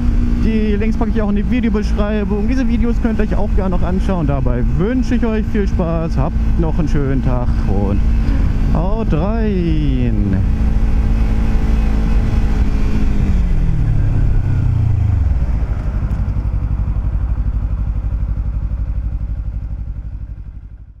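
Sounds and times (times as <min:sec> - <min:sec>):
motorcycle engine idling: 0:00.0 - 0:21.0.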